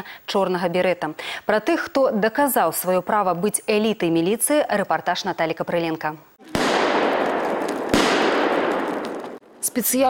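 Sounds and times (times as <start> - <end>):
sharp bangs: 6.4 - 9.4.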